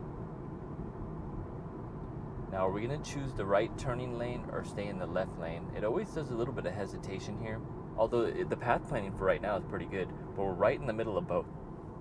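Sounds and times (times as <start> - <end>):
road and tyre noise in car: 0.0 - 12.0.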